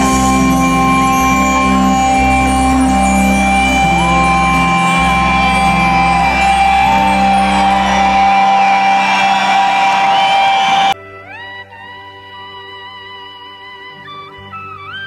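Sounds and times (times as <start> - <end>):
acoustic guitar: 0.0 - 10.9
bass guitar: 0.0 - 10.9
rising gliding tones: 0.0 - 11.0.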